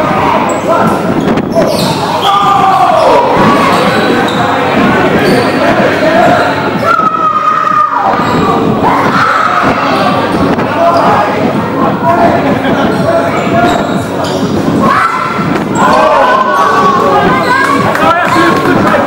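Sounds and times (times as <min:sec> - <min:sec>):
players' voices in large hall: 0:00.0 - 0:19.0.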